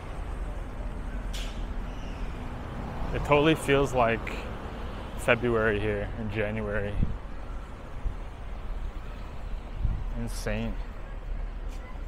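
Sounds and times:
light car traffic: 0:00.0 - 0:12.0
wind rumble on microphone: 0:06.8 - 0:07.3, 0:07.9 - 0:10.2.

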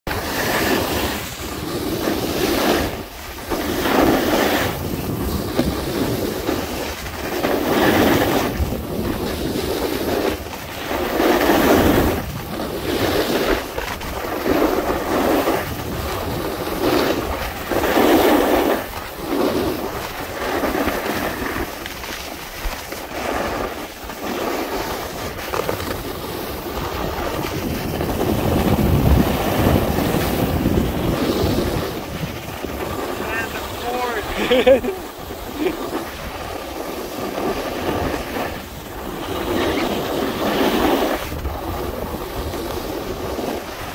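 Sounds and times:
wind rushing over microphone: 0:00.1 - 0:21.8, 0:22.6 - 0:43.9
skis scraping on snow: 0:00.1 - 0:43.9.

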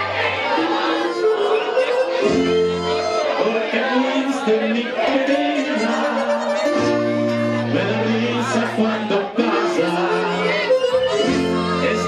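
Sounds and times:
person singing: 0:00.8 - 0:12.0
acoustic guitars and bass: 0:02.0 - 0:03.4, 0:04.5 - 0:12.0.

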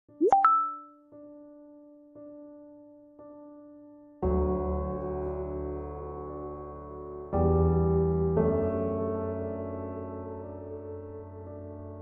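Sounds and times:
rising pop sound effect: 0:00.2 - 0:00.9.

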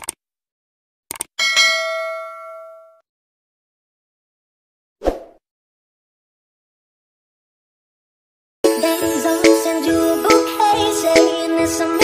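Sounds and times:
bright bell ding: 0:01.4 - 0:03.0.

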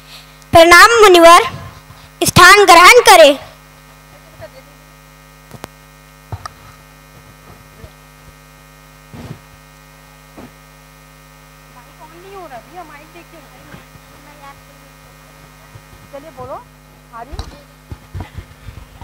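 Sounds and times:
electrical mains hum: 0:00.0 - 0:19.0
loud voice: 0:00.6 - 0:03.5.

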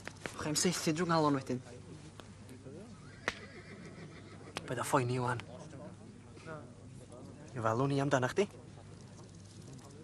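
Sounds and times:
faint horse whinnying: 0:03.0 - 0:04.6.

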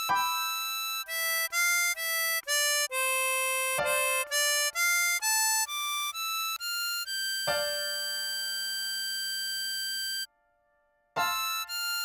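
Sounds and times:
harmonica playing: 0:00.0 - 0:10.3, 0:11.2 - 0:12.0.

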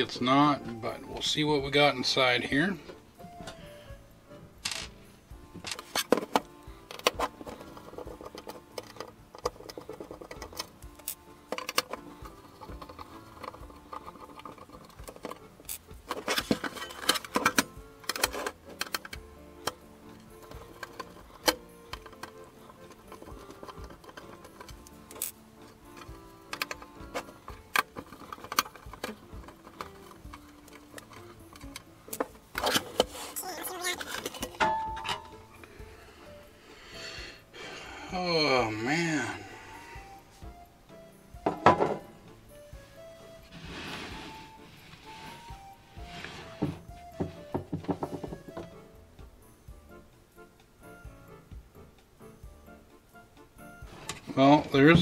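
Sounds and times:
background music: 0:00.0 - 0:55.0
metal cover clattering: 0:05.6 - 0:33.3, 0:33.9 - 0:35.5, 0:41.4 - 0:42.1
screwdriver and screws on metal case: 0:05.6 - 0:35.7.

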